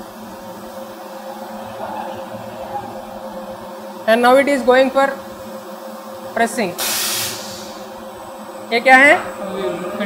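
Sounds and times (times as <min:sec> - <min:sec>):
low tones: 0:00.0 - 0:06.0
machinery hum: 0:00.0 - 0:10.0
hiss: 0:06.8 - 0:08.0.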